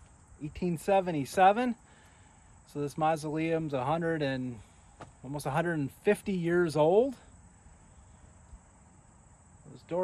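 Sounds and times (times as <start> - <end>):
high-pitched insect trill: 0.0 - 10.0
man speaking: 9.7 - 10.0.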